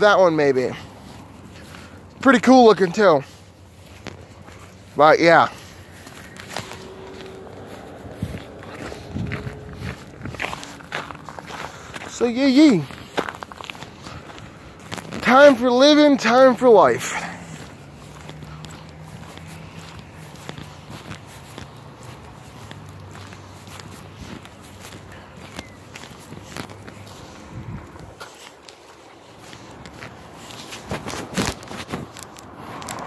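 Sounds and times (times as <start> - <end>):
footsteps thumps and scuffs: 0.0 - 33.0.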